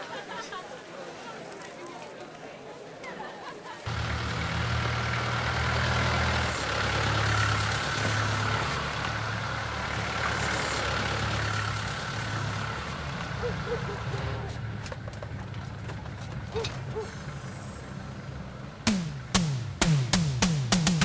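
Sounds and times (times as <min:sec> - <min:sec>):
traffic-like noise: 0:00.0 - 0:20.6
vehicle engine running: 0:03.9 - 0:21.0.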